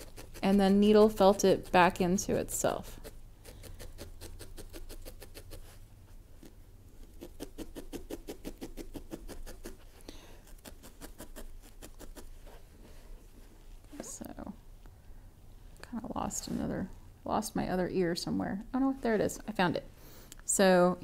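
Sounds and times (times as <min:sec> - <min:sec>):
felting needle poking wool: 0:00.0 - 0:12.6.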